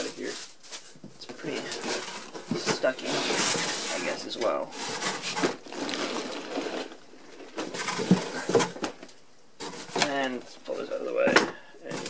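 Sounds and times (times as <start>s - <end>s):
cardboard boxes scraping: 0.0s - 9.0s
cardboard rustling: 0.0s - 12.0s.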